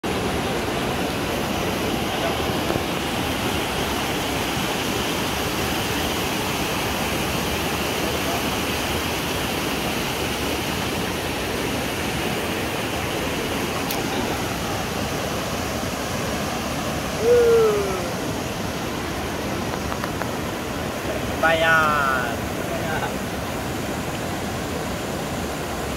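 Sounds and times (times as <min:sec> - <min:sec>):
river rushing over rocks: 0:00.0 - 0:25.9.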